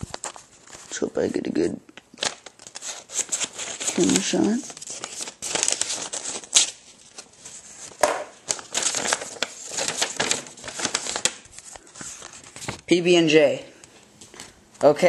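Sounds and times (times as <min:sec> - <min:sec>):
paper crinkling and rustling: 0:00.0 - 0:01.4, 0:02.0 - 0:12.9
knife cutting paper envelope: 0:02.2 - 0:12.7.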